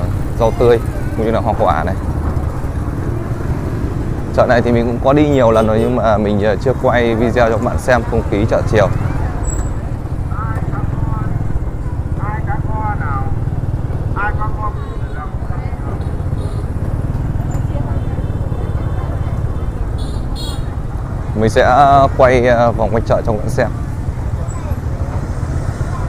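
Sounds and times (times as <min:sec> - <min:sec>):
motorbikes passing: 0:00.0 - 0:26.0
people talking: 0:04.4 - 0:09.4, 0:10.3 - 0:11.5, 0:12.2 - 0:13.4, 0:14.1 - 0:16.2, 0:17.5 - 0:20.0.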